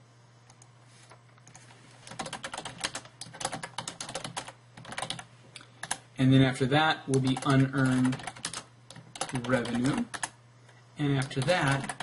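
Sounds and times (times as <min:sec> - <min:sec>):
steady low hum: 0:00.0 - 0:12.0
computer keyboard typing: 0:02.1 - 0:06.0, 0:07.1 - 0:10.4, 0:11.2 - 0:12.0.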